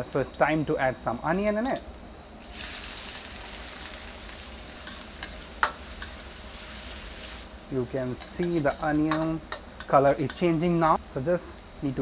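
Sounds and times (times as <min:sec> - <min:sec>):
onion sizzling in hot oil: 0:02.4 - 0:12.0.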